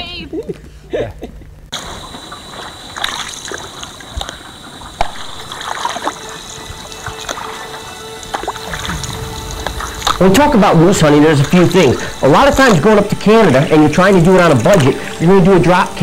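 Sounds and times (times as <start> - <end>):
paddle strokes through water: 1.8 - 16.0
water dripping off paddle: 1.8 - 16.0
background music: 5.2 - 16.0.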